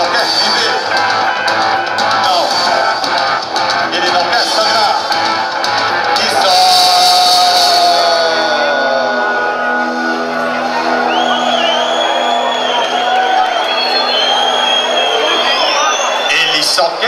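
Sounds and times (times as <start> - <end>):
rock band sustained chord: 0.0 - 14.8.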